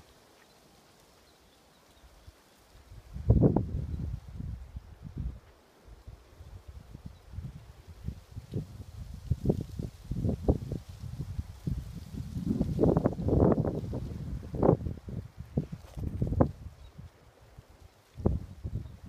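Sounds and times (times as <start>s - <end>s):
wind buffeting microphone: 3.0s - 17.6s, 18.2s - 19.0s.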